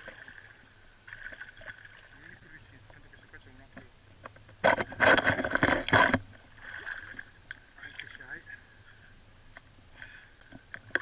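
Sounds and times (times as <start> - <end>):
river water splashing and lapping: 0.0 - 3.6, 4.6 - 8.4.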